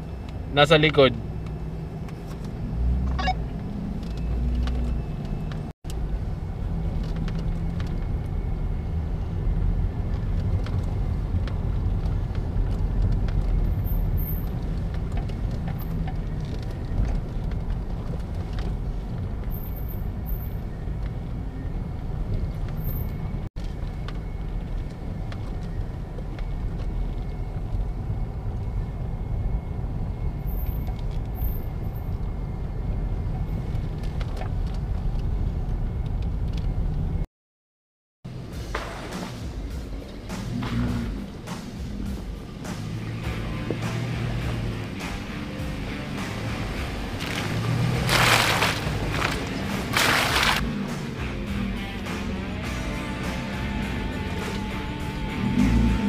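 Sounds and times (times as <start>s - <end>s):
truck engine and tyres rumbling: 0.0s - 37.3s, 38.3s - 56.0s.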